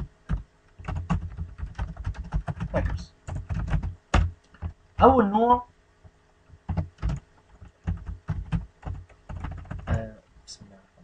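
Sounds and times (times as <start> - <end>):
keyboard typing: 0.0 - 5.1, 6.6 - 10.0.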